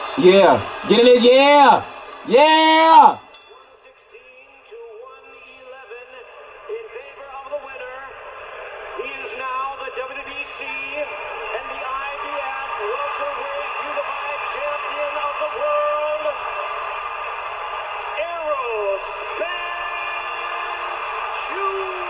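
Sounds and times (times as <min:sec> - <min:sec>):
announcer over public address: 0:00.0 - 0:03.3
crowd noise: 0:00.0 - 0:22.0.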